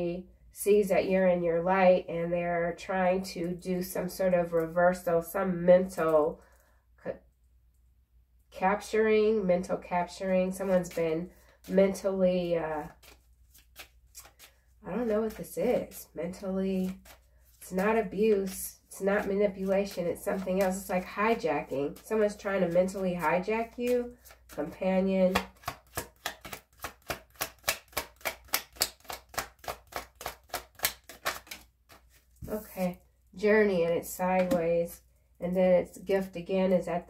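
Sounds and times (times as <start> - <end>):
cards shuffled by hand: 10.5 - 12.1, 12.8 - 33.0.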